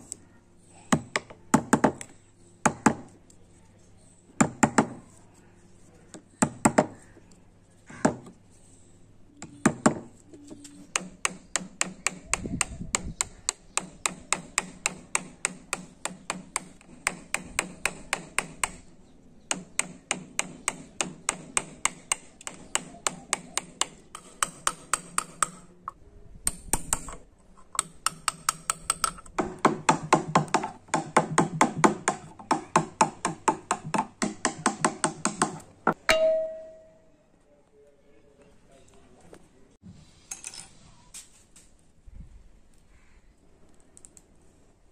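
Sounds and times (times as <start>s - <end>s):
chisel tapping wood: 27.8s - 36.0s.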